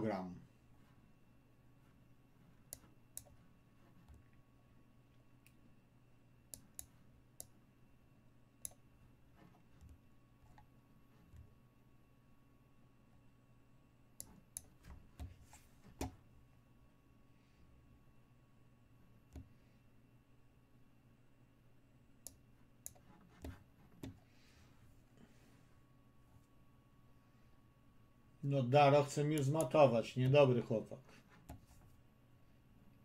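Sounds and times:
faint room hum: 0.0 - 33.0
computer mouse clicks: 2.6 - 3.4, 6.5 - 7.6, 8.6 - 8.8, 14.2 - 16.2, 22.2 - 24.2, 29.3 - 29.8.

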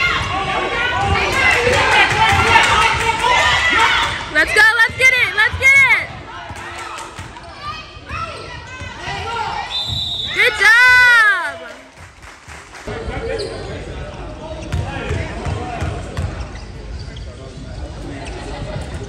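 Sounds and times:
loud drawn-out shout: 10.4 - 11.7.

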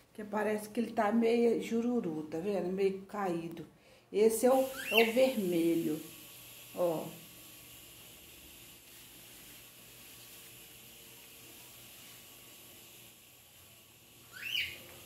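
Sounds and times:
background hiss: 0.0 - 15.0.

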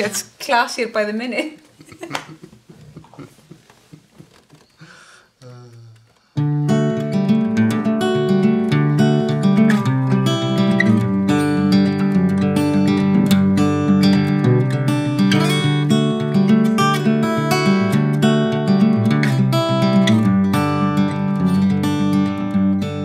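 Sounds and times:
acoustic guitar strumming: 5.7 - 23.0.

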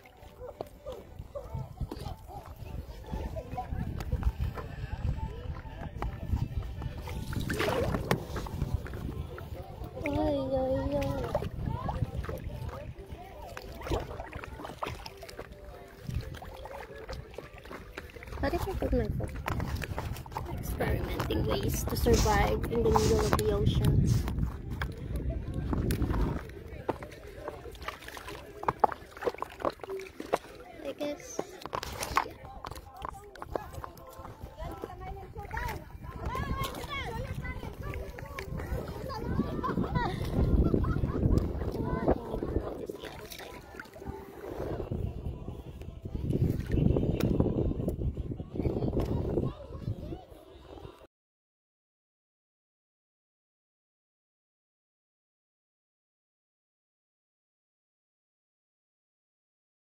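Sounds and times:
water lapping: 0.0 - 51.0
wind noise: 1.1 - 14.2, 18.4 - 27.5, 33.5 - 51.0
woman talking indistinctly: 18.4 - 19.5, 20.3 - 24.3, 30.6 - 31.6
faint distant voices: 19.7 - 51.1.

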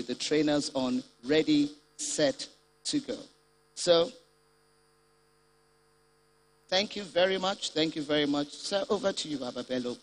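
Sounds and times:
man speaking: 0.0 - 4.3, 6.7 - 10.0
faint electrical hum: 0.0 - 10.0.

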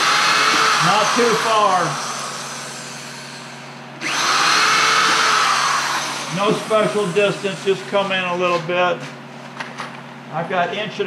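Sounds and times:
electric drill boring into wood: 0.0 - 7.7.

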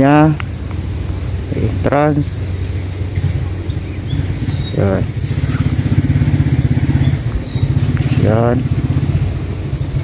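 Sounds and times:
engine running: 0.0 - 10.0.

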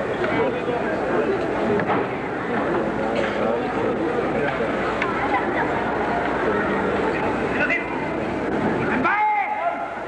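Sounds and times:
voices echoing in arena: 0.0 - 10.0.

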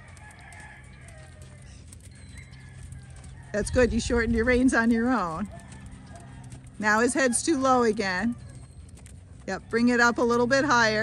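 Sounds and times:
rooster crowing: 0.0 - 4.1, 5.1 - 7.6.

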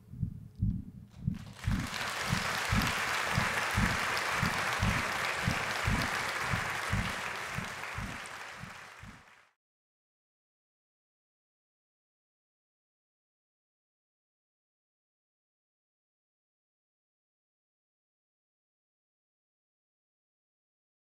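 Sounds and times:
low thumps: 0.0 - 1.9, 3.8 - 9.2
audience applauding: 1.4 - 9.6.

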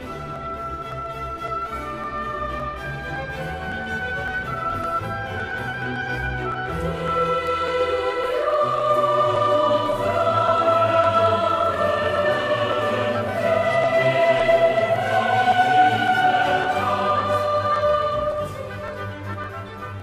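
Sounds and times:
orchestra accompanying: 0.0 - 20.0
girls' choir singing: 6.6 - 19.3.

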